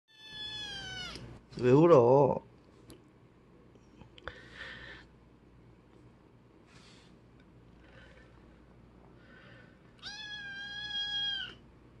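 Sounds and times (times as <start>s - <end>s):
kitten meowing: 0.1s - 1.3s, 10.0s - 11.6s.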